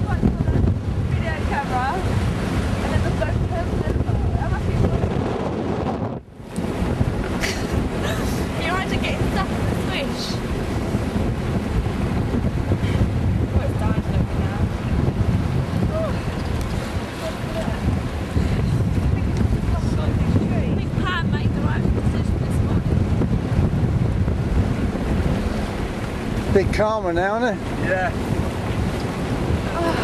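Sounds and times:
sea rushing: 0.0 - 30.0
wind buffeting microphone: 0.0 - 30.0.

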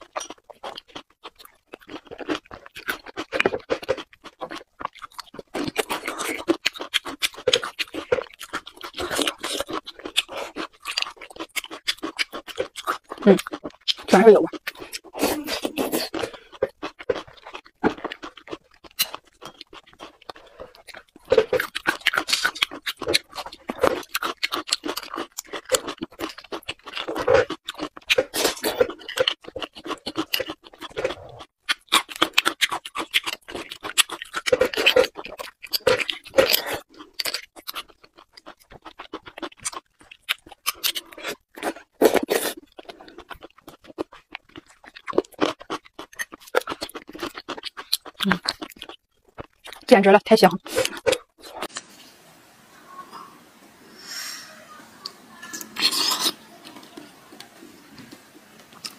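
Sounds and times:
chewing mouth sounds: 0.0 - 49.9, 50.5 - 51.8.

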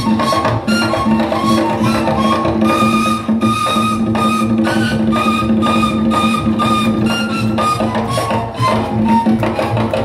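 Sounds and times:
steady percussion beat: 0.0 - 10.0.

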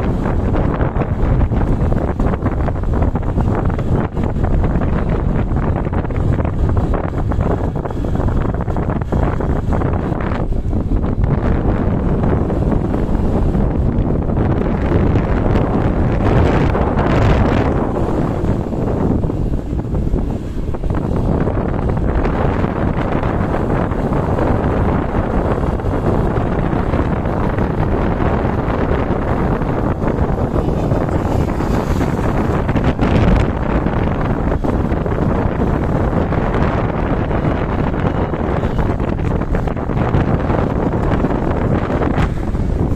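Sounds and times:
wind rushing over microphone: 0.0 - 42.9.

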